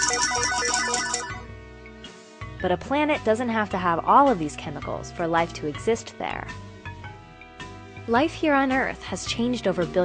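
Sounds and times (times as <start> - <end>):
slot machine electronic bell ringing: 0.0 - 1.4.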